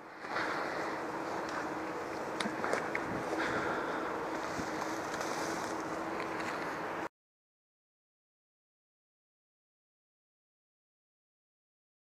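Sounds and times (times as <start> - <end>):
wind noise on microphone: 2.5 - 6.1.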